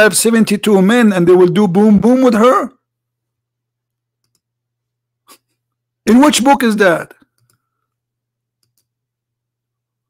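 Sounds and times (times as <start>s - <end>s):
computer mouse clicks: 4.2s - 4.5s, 7.2s - 7.6s, 8.6s - 8.9s.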